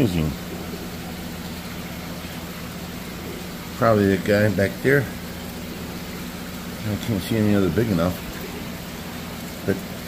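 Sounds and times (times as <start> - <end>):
low steady pump hum: 0.0 - 10.0.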